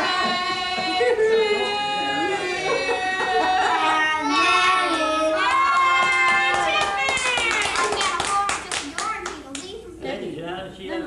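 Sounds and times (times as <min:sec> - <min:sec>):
people clapping: 0:04.8 - 0:09.8.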